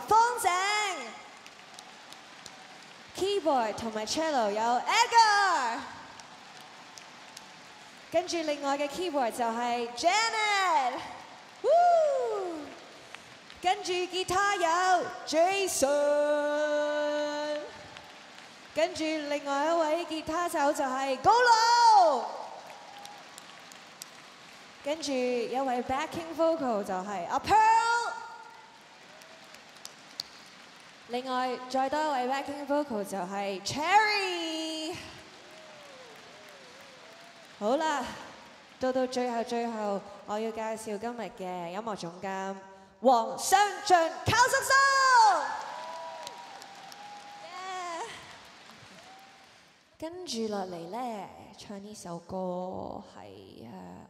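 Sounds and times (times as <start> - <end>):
audience applause: 1.2 - 3.4, 5.4 - 8.6, 16.9 - 18.8, 22.5 - 24.8, 28.6 - 31.2, 34.2 - 38.8, 45.4 - 49.8.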